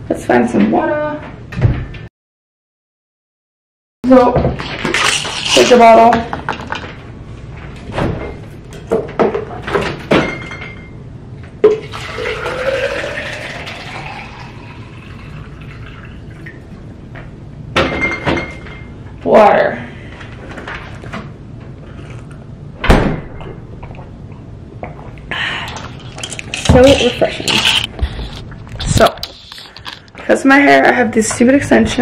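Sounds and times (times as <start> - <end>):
water poured into plastic bottle: 11.8 - 16.4.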